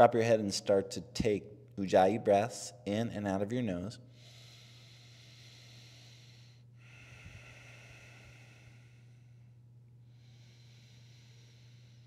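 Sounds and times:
low electrical hum: 0:00.0 - 0:12.0
slow hissing breath: 0:04.1 - 0:12.0.

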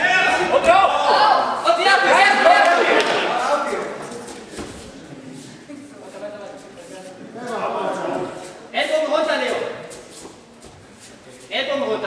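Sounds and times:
voices calling out in a hall: 0:00.0 - 0:12.0
faint knocks and scuffs: 0:04.0 - 0:05.6, 0:09.5 - 0:11.5.

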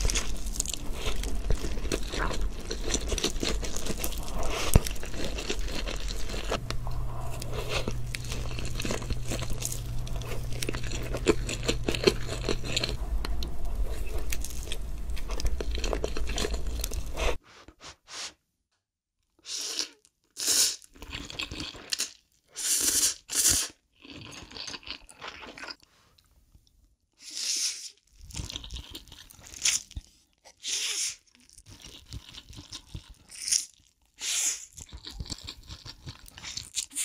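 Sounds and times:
wet chewing: 0:00.0 - 0:17.4, 0:34.6 - 0:37.0.

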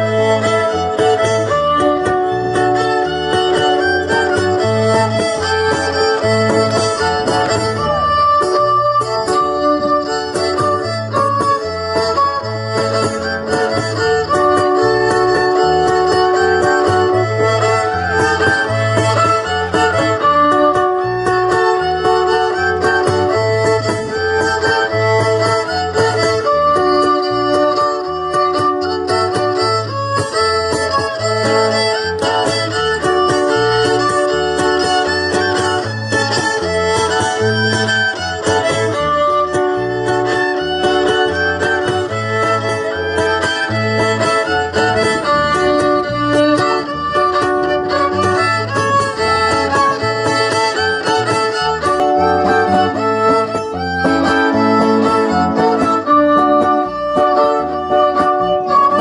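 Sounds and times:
pulsing bass line: 0:00.0 - 0:59.0
strummed guitar: 0:00.0 - 0:59.0
violin melody: 0:00.0 - 0:59.0.

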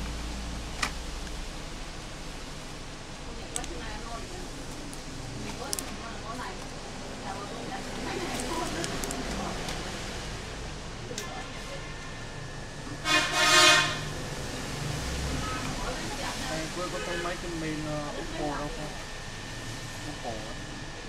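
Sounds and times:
horn honking: 0:13.0 - 0:14.2.

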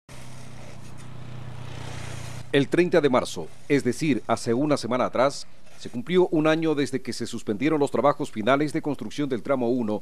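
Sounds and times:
diesel engine humming: 0:00.1 - 0:02.7.

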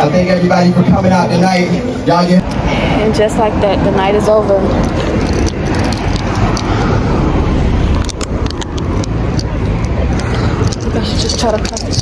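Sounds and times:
low rumble: 0:02.4 - 0:12.0
sharp clicks: 0:04.8 - 0:07.0, 0:07.7 - 0:12.0.

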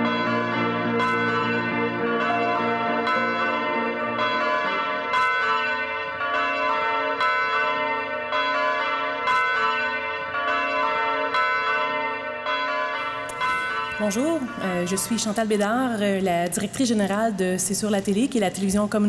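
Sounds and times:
church bells ringing: 0:00.0 - 0:17.0.

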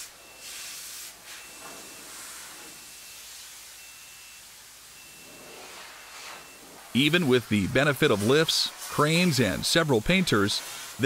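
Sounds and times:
paint spray gun hissing: 0:00.0 - 0:01.4, 0:05.6 - 0:11.0.

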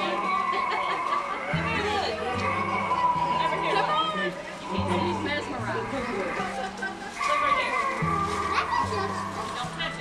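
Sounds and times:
children's voices: 0:00.0 - 0:10.0
music with sustained bass notes: 0:01.6 - 0:10.0.

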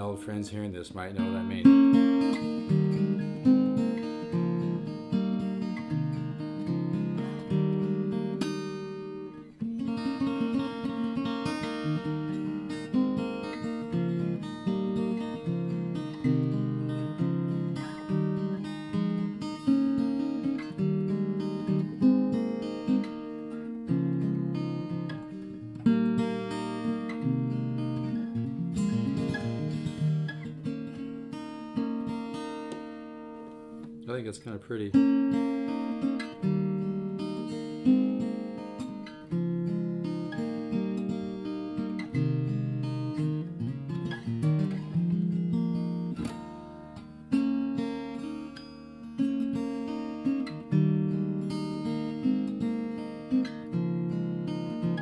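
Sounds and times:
acoustic guitar chords and melody: 0:00.0 - 0:55.0.

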